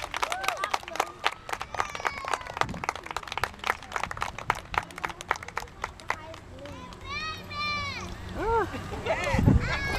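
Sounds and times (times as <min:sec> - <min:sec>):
crowd clapping: 0:00.0 - 0:07.3
voices calling out: 0:04.9 - 0:09.9.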